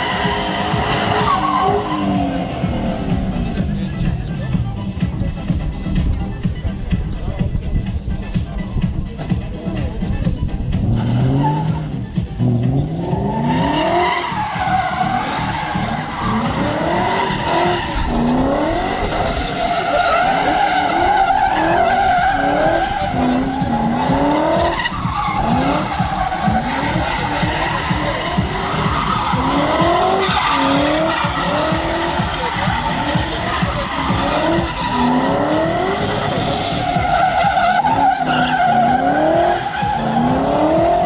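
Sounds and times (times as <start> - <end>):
tyres squealing: 0.0 - 3.1, 13.0 - 41.0
car engine revving hard: 0.0 - 4.0, 10.7 - 41.0.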